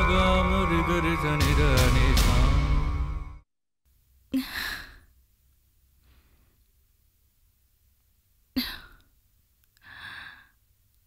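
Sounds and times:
woman sighing: 4.4 - 5.1.

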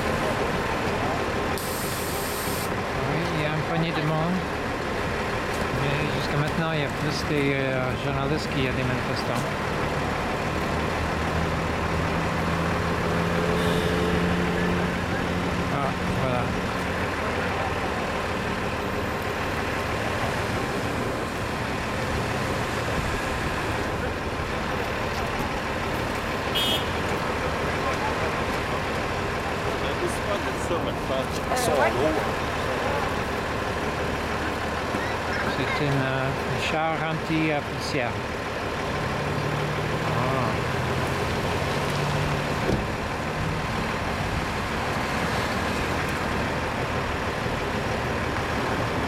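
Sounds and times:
bus diesel engine idling: 0.0 - 41.6, 42.3 - 49.0
street traffic noise: 0.0 - 49.0
murmur of voices: 27.6 - 33.6.

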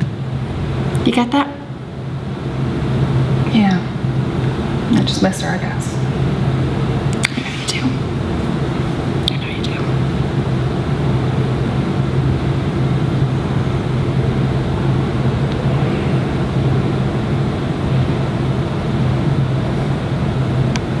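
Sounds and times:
constant hum: 0.0 - 21.0
low rumble: 7.8 - 21.0.

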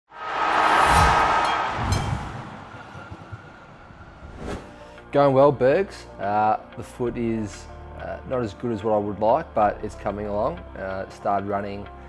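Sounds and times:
whoosh: 0.1 - 4.9.

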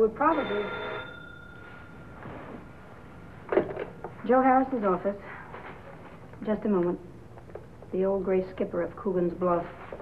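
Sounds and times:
faint steady high tone: 0.0 - 2.8.

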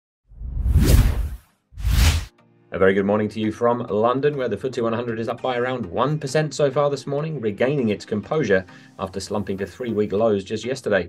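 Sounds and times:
whoosh sound effects: 0.4 - 2.3.

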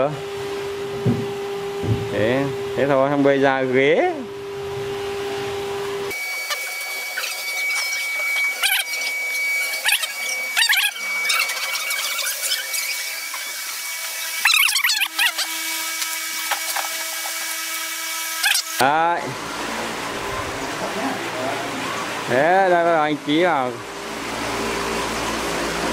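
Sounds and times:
power tool high whine: 0.2 - 25.9
sliding high-pitched squeals: 6.1 - 18.8.

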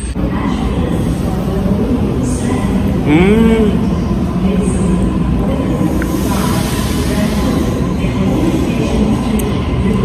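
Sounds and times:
train rumbling from inside carriage: 0.0 - 10.0.

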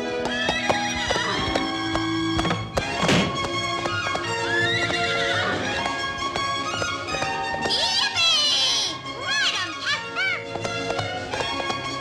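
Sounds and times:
hoofbeats: 0.0 - 8.7, 9.8 - 12.0
orchestral cartoon music: 0.0 - 12.0
horse whinnying: 4.3 - 5.8.

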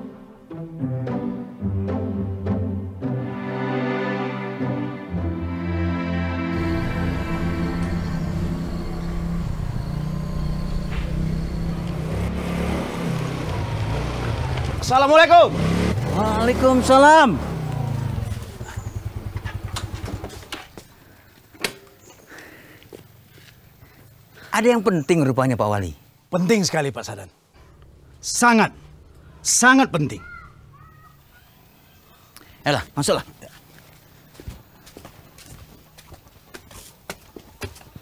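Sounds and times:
motor scooter engine putting: 6.6 - 22.1
footsteps on steps: 33.4 - 38.0.

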